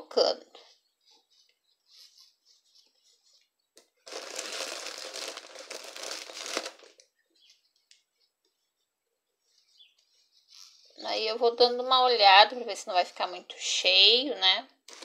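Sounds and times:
fiber fill crinkling and rustling: 0:00.6 - 0:12.2.

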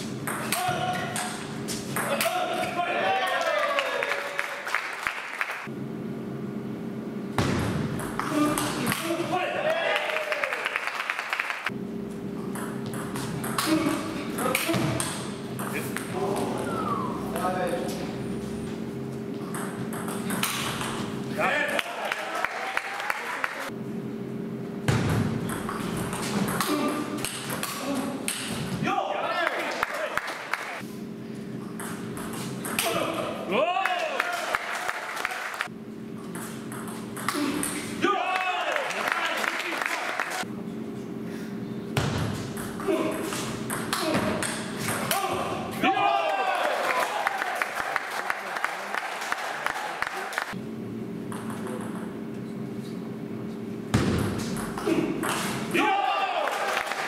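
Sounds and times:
steady hum: 0:05.6 - 0:10.8, 0:11.6 - 0:22.1, 0:23.6 - 0:29.3, 0:50.5 - 0:56.4
table tennis ball bouncing: 0:19.5 - 0:21.0, 0:43.7 - 0:45.2, 0:51.3 - 0:52.1
person shouting: 0:54.8 - 0:56.6.

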